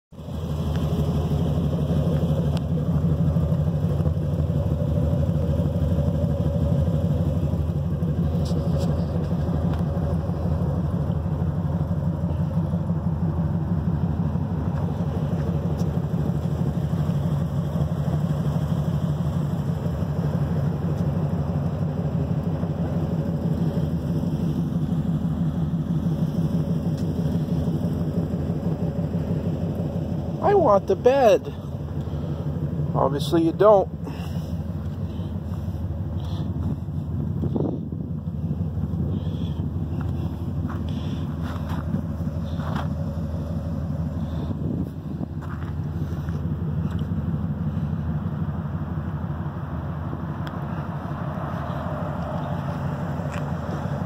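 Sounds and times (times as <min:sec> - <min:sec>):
pickup truck engine idling: 0:00.1 - 0:54.0.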